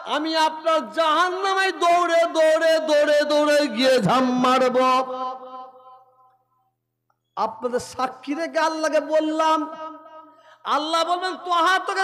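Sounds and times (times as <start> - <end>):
man chanting over loudspeaker: 0.0 - 6.0, 7.4 - 12.0.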